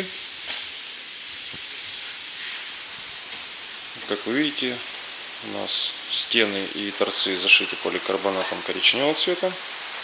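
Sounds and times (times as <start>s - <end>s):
rain on a plastic roof: 0.0s - 10.0s.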